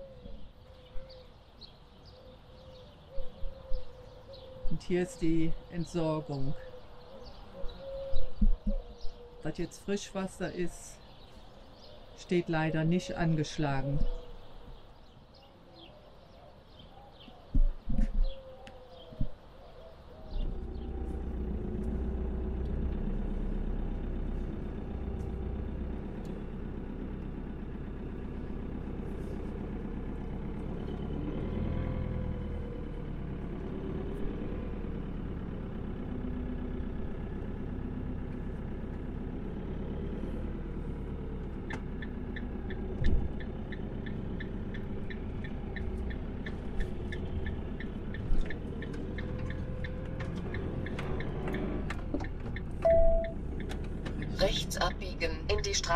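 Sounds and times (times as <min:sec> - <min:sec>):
van engine rumbling: 0:00.0 - 0:55.9
steady ticking: 0:41.6 - 0:55.9.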